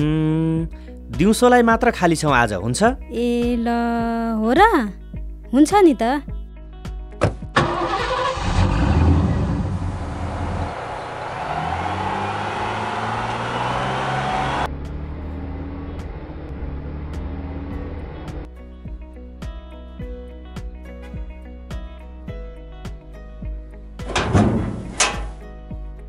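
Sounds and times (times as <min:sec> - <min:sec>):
background music: 0:00.0 - 0:09.3, 0:11.4 - 0:26.0
truck engine starting and running: 0:07.2 - 0:18.5, 0:24.0 - 0:25.6.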